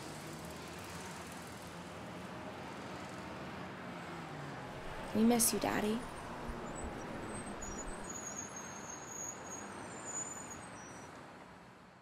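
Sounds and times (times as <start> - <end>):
distant traffic: 4.6 - 8.2.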